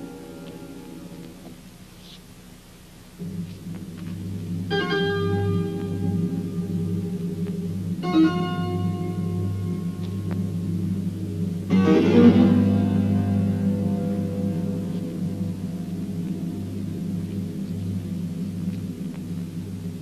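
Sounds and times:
low organ-like drone: 3.2s - 20.0s
sustained chords: 3.2s - 20.0s.

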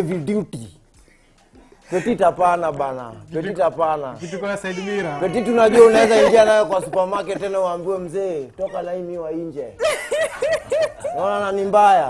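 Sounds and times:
person cackling laughter: 4.2s - 7.5s, 9.8s - 11.3s.

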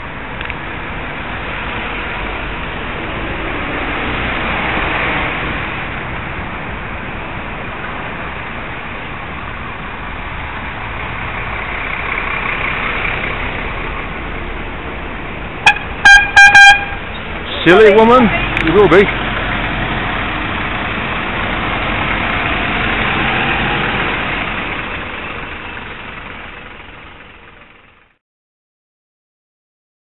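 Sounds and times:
traffic noise: 0.0s - 28.2s
wind: 0.0s - 28.2s
horn blasts: 15.6s - 17.1s.

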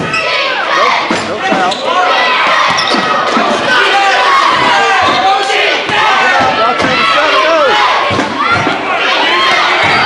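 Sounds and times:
people shouting: 0.0s - 10.0s.

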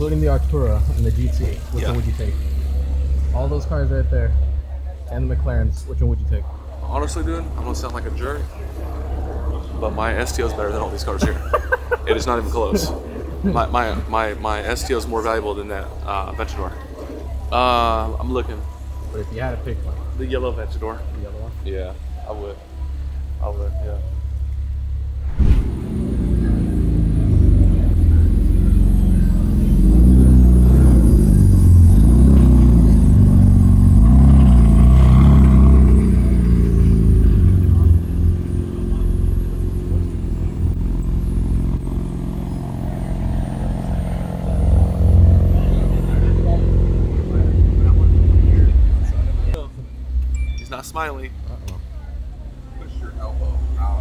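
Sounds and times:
people talking: 0.0s - 24.3s, 25.4s - 34.0s, 35.2s - 41.4s, 43.4s - 54.0s
sports car engine revving: 25.2s - 49.6s.

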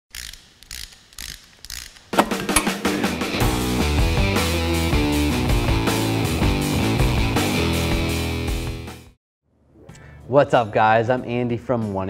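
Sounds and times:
ratchet-like mechanical clicking: 0.1s - 2.7s.

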